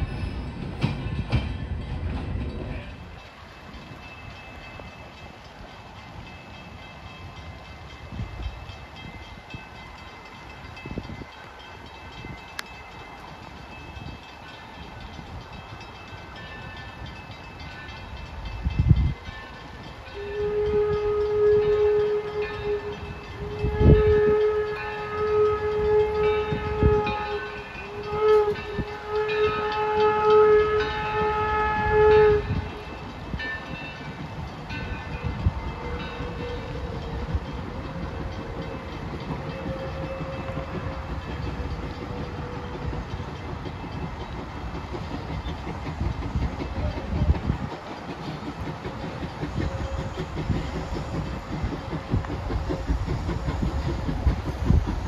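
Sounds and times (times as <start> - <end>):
steam whistle blasts: 20.1 - 33.0, 35.2 - 43.2.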